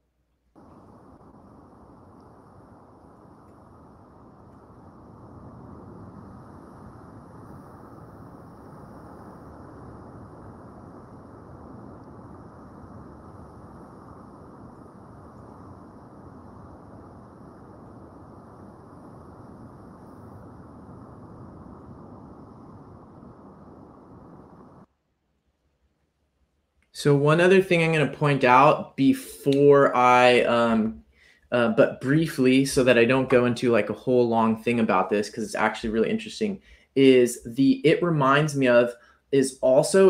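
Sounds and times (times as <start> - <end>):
muffled underwater rush: 0.6 - 24.9.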